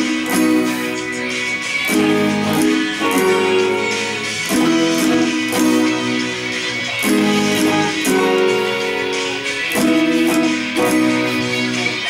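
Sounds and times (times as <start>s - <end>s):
acoustic guitars strumming: 0.0s - 12.0s.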